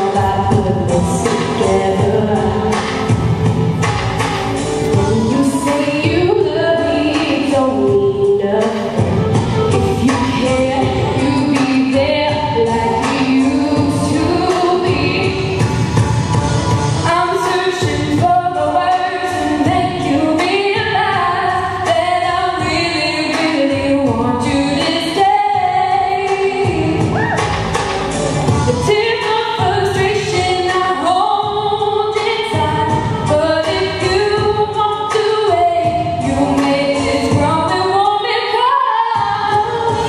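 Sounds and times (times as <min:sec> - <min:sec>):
female a cappella group singing: 0:00.0 - 0:03.0, 0:04.8 - 0:09.0, 0:09.9 - 0:15.6, 0:28.8 - 0:40.0.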